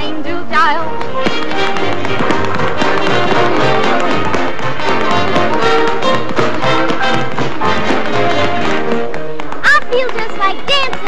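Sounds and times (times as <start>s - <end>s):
orchestral dance music: 0.0s - 11.0s
tap-dance steps on hard floor: 0.9s - 11.0s.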